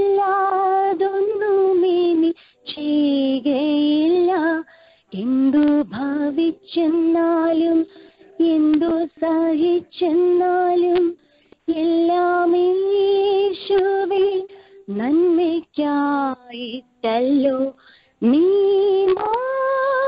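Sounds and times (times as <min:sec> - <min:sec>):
woman singing over a telephone: 0:00.0 - 0:20.0.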